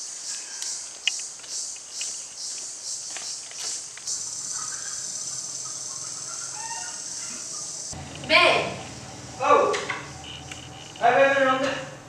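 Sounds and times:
high-pitched insects chirring: 0.0s - 11.4s
short bird calls: 4.2s - 7.7s.

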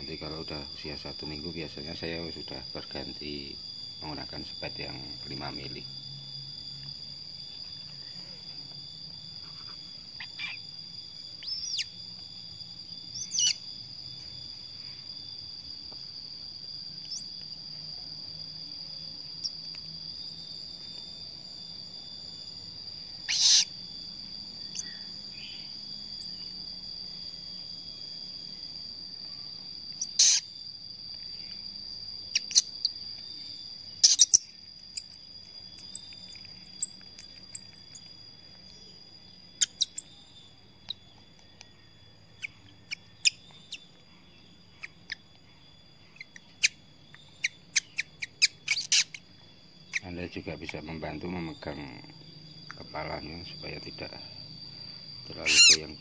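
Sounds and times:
cricket chirring: 0.0s - 56.0s.

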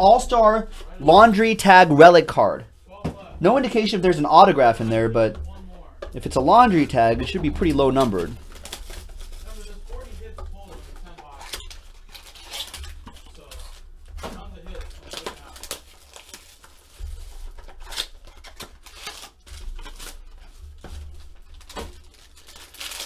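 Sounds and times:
low steady hum: 0.0s - 16.3s
foil wrappers crinkling and tearing: 0.1s - 23.0s.

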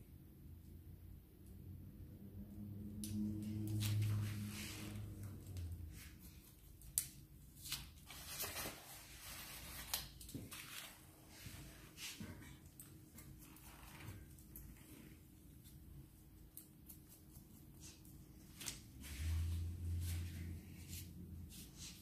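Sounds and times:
low steady hum: 0.0s - 22.0s
scissors snipping hair: 16.4s - 18.0s.

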